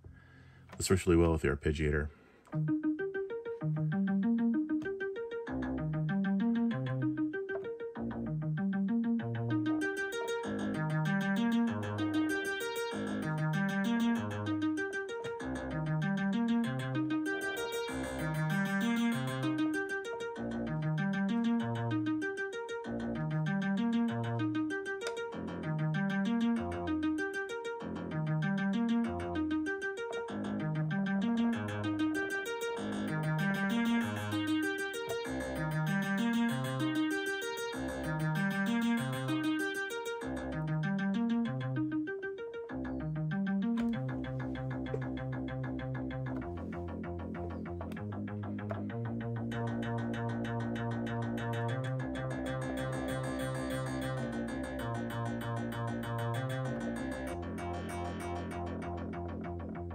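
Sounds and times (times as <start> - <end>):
synthesizer arpeggio: 2.5 - 59.9.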